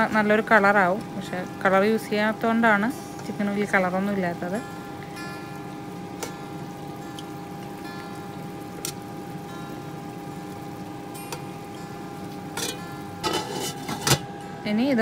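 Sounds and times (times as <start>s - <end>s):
steady hum of fixed tones: 0.0s - 15.0s
glass lid clattering on pot: 12.6s - 14.3s.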